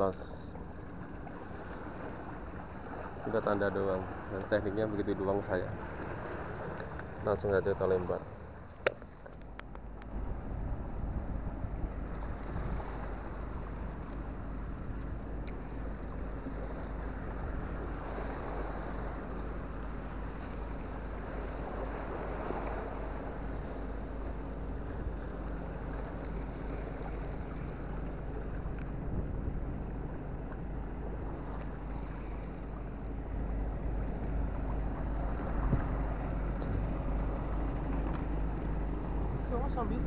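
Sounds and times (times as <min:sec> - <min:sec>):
sea waves washing: 0:00.0 - 0:40.0
wind rushing over microphone: 0:09.5 - 0:15.0, 0:24.8 - 0:32.4, 0:33.2 - 0:40.0.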